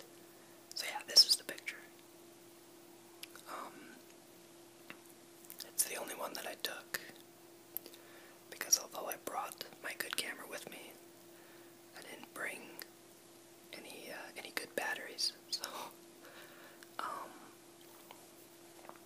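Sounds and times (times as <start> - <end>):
faint steady hum: 0.0 - 19.0
person whispering: 0.8 - 1.9, 3.4 - 4.0, 5.6 - 7.2, 8.5 - 11.0, 11.9 - 12.9, 13.8 - 16.0, 17.0 - 17.6.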